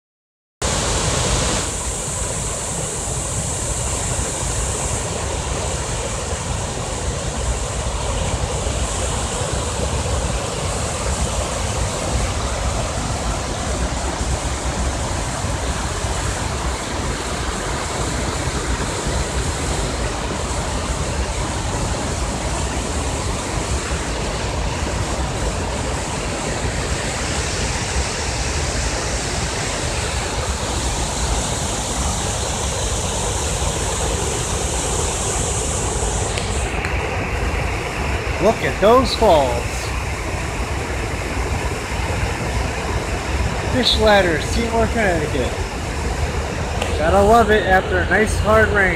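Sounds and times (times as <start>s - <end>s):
river water roaring over dam: 0.6s - 48.9s.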